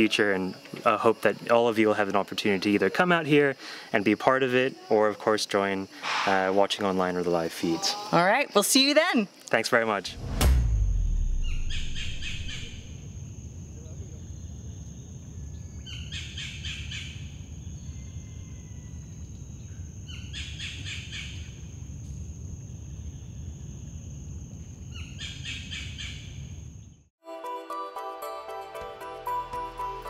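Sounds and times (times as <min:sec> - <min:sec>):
high-pitched insect whine: 0:00.0 - 0:26.9
low rumble: 0:10.1 - 0:13.6
rapid trilling call: 0:11.4 - 0:12.9.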